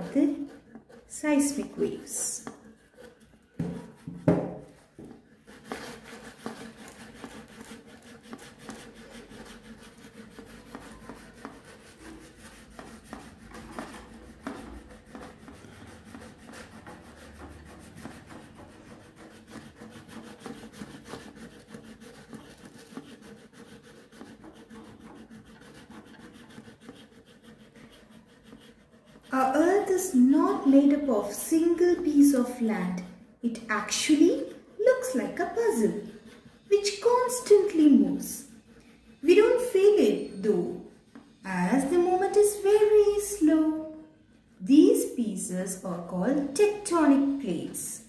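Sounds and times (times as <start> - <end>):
cardboard scraping on wood: 0.0 - 32.6
knocks on wooden table: 3.6 - 5.1.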